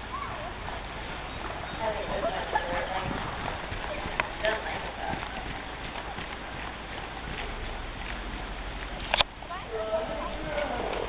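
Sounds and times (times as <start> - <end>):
horse hoofbeats on soft dirt: 0.2 - 11.0.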